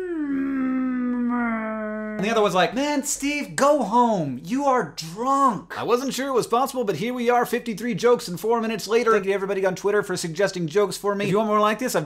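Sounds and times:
man imitating whale call: 0.0s - 2.2s.

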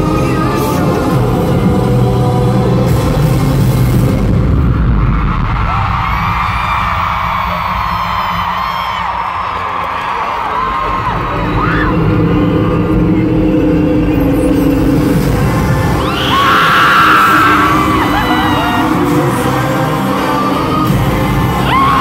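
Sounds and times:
concert music with pulsing bass: 0.0s - 22.0s
crowd screaming: 4.3s - 22.0s.

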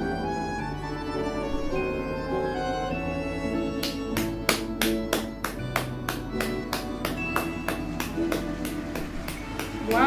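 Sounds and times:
instrumental music: 0.0s - 10.0s
hands clapping rhythmically: 3.7s - 10.0s.

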